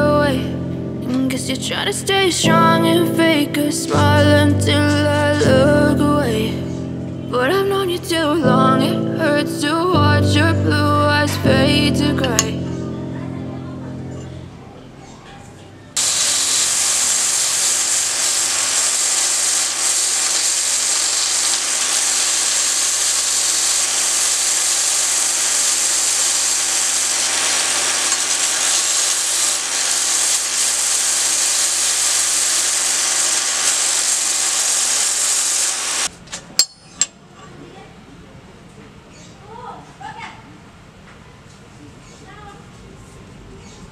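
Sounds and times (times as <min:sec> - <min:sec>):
belt sander hiss: 0:16.0 - 0:36.1
motor hum: 0:16.0 - 0:36.1.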